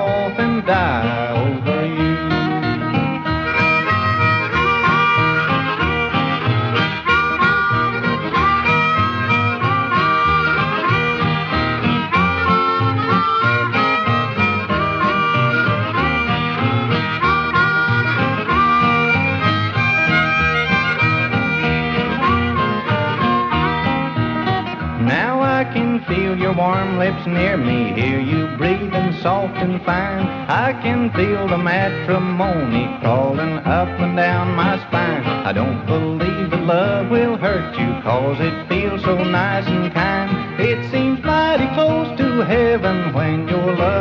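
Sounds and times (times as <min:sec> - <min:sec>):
harmonica solo with bending notes: 0:00.0 - 0:44.0
steady guitar rhythm: 0:00.0 - 0:44.0.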